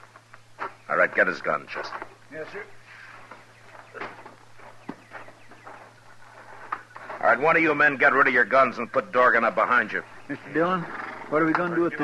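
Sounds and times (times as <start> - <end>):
faint footsteps: 0.0 - 12.0
steady low hum: 0.0 - 12.0.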